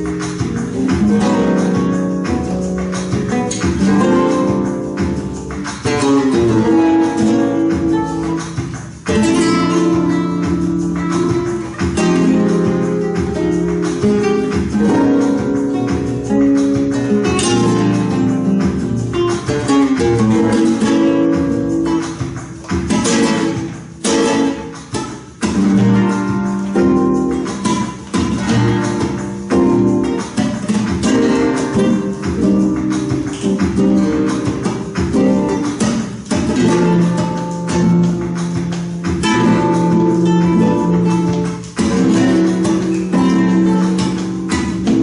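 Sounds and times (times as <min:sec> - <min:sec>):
flamenco guitars playing: 0:00.0 - 0:45.0.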